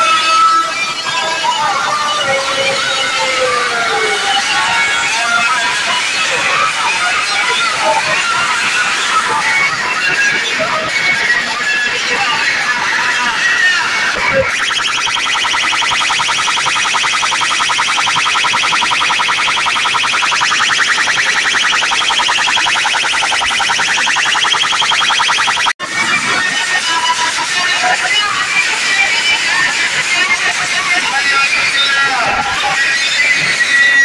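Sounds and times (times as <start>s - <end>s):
loud dance music over speakers: 14.4s - 25.7s.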